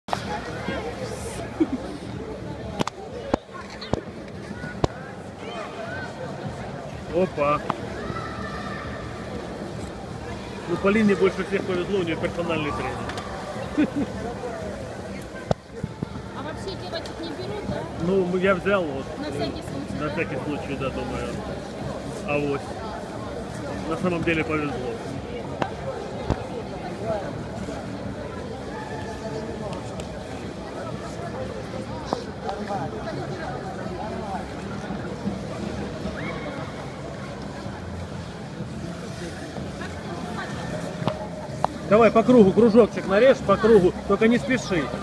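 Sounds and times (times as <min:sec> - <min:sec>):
faint background voices: 0:00.1 - 0:45.0
ice rink background hum: 0:00.1 - 0:45.0.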